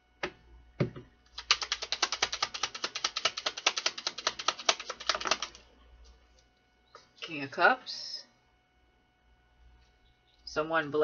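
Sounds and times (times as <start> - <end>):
cards shuffled by hand: 1.3 - 5.6.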